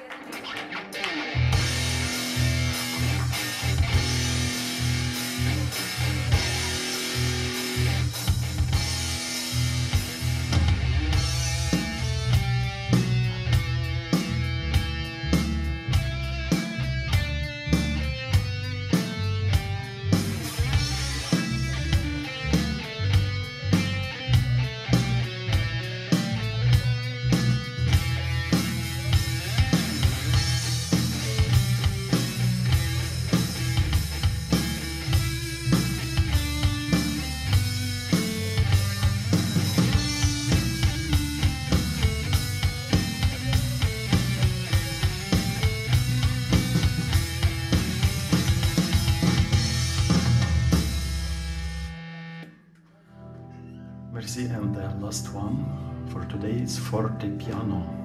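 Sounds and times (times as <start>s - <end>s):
electric guitar: 0.0s - 54.1s
drum kit beat: 0.4s - 51.9s
heavy bass line: 1.4s - 52.2s.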